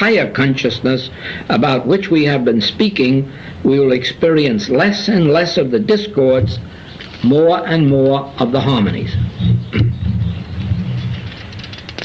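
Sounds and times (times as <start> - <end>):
low rumble with hum: 8.3 - 12.0.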